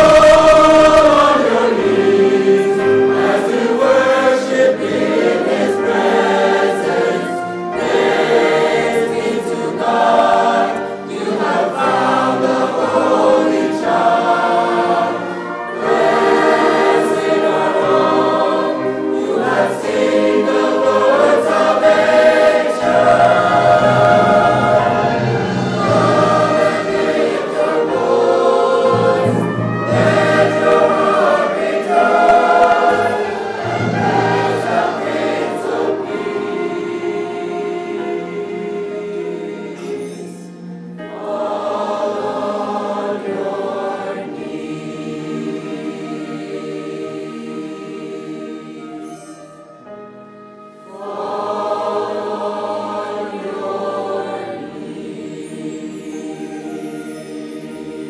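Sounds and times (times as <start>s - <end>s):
choir singing held notes: 0.0s - 58.0s
string orchestra: 0.0s - 58.0s.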